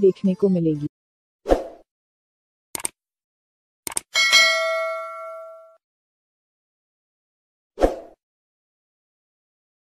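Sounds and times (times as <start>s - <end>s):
notification bell ding: 4.2s - 5.8s.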